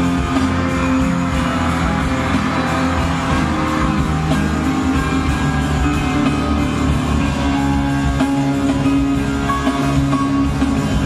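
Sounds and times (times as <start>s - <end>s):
live band music: 0.0s - 11.0s.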